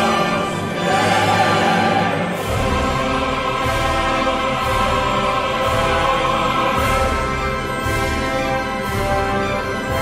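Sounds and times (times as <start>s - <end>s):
operatic chorus and orchestra: 0.0s - 10.0s.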